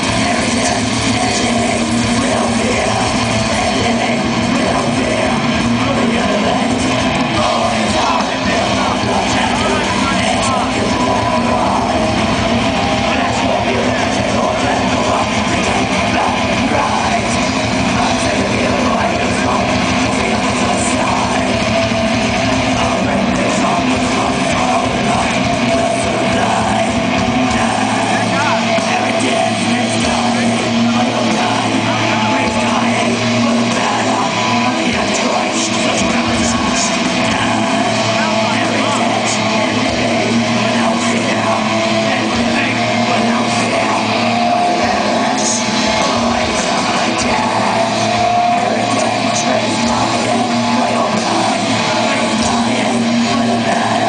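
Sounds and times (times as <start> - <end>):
distorted electric guitars: 0.0 - 54.0
drums: 0.0 - 54.0
live metal band playing: 0.0 - 54.0.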